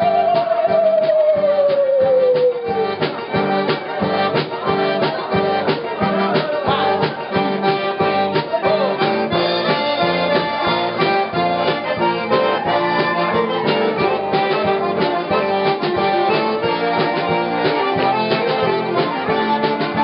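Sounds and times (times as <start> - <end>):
button accordion: 0.0 - 20.0
steady drum beat: 0.0 - 20.0
fiddle: 2.3 - 20.0.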